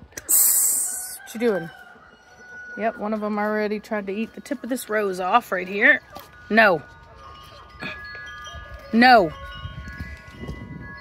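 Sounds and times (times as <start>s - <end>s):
chimes ringing: 1.7s - 11.0s.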